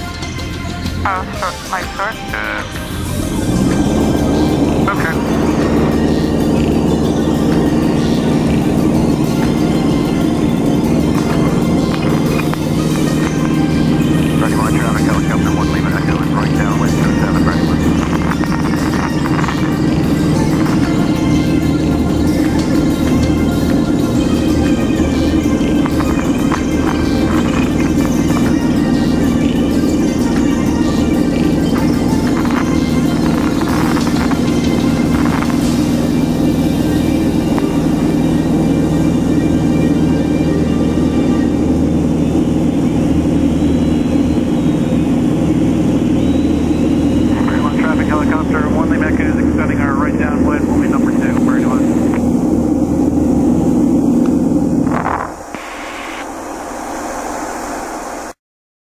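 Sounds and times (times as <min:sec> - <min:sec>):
airplane engine drone in cabin: 0:00.0 - 0:58.4.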